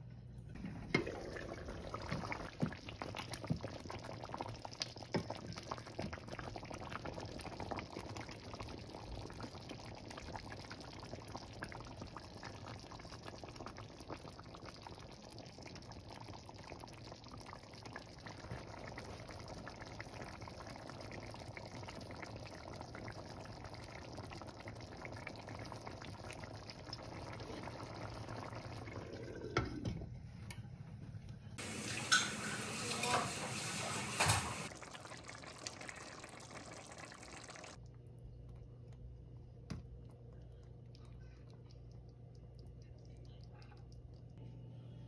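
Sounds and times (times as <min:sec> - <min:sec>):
sauce bubbling in a pot: 0:00.5 - 0:30.1, 0:31.6 - 0:44.4.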